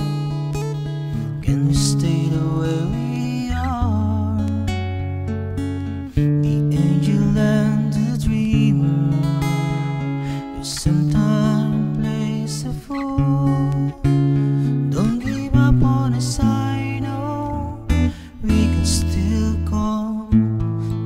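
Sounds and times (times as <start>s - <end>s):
acoustic guitar strummed chords: 0.0s - 21.0s.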